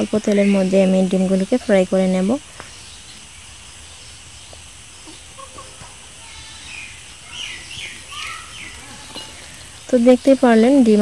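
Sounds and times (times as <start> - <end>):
bird chirping: 0.0 - 11.0
eggs frying in oil: 0.0 - 11.0.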